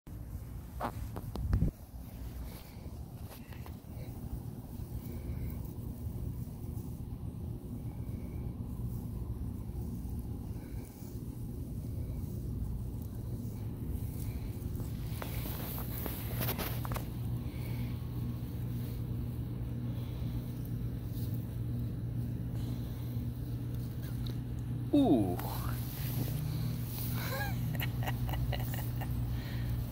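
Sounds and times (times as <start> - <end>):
crackling rustle: 0.1 - 29.9
low mechanical hum: 0.1 - 29.9.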